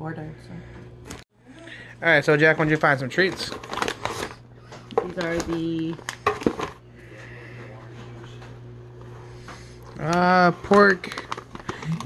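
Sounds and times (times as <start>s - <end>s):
plastic bag crinkling: 2.4s - 4.4s, 10.6s - 12.0s.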